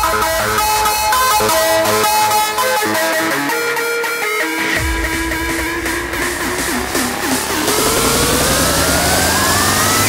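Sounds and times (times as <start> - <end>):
rising synth sweep: 4.8 - 10.0.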